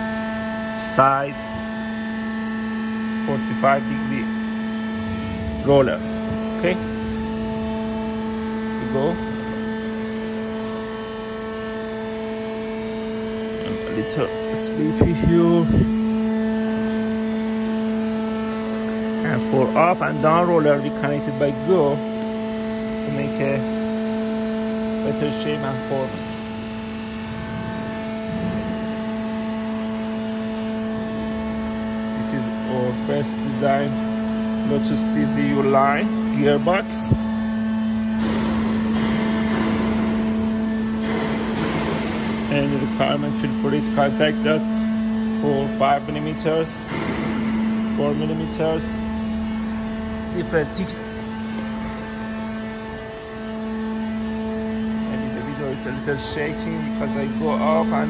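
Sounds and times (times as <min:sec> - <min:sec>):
roll forming machine running: 0:00.0 - 0:58.0.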